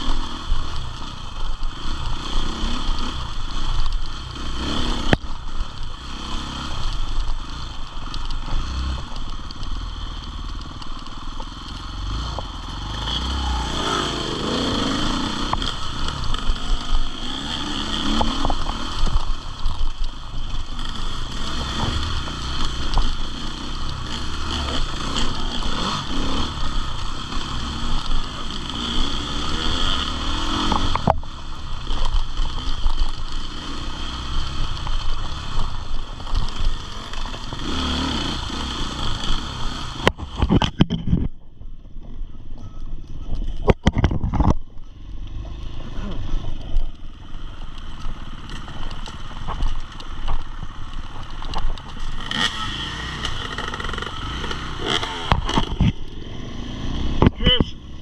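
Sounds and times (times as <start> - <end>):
motorcycle engine revving: 0.0 - 58.0.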